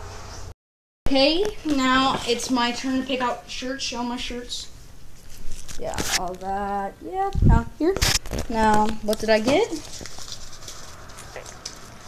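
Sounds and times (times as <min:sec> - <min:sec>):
paper rustling and crinkling: 0:05.2 - 0:06.4, 0:08.0 - 0:12.0.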